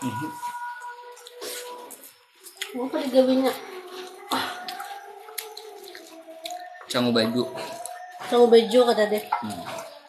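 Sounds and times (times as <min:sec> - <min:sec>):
wet chewing sounds: 0:00.0 - 0:10.0
mouth smacks and clicks: 0:00.8 - 0:02.8.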